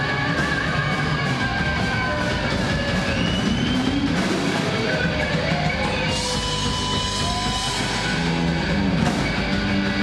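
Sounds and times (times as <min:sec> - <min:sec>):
live heavy rock band: 0:00.0 - 0:10.0.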